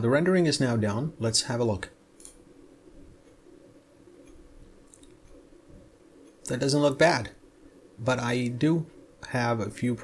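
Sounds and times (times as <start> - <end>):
low steady hum: 0.0 - 10.0
computer mouse clicks: 2.2 - 2.4, 4.2 - 5.4.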